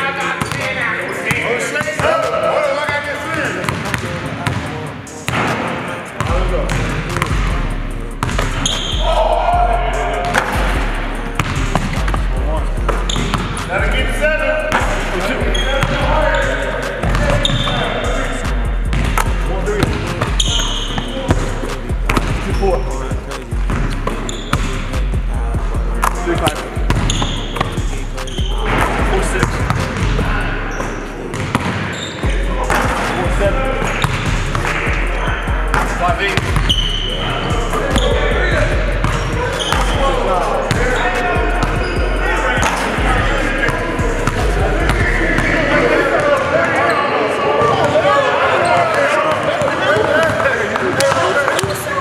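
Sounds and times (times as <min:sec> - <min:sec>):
music with deep bass line: 0:06.2 - 0:46.2
basketballs bouncing on hardwood: 0:28.7 - 0:30.2, 0:31.3 - 0:31.8, 0:34.0 - 0:34.4.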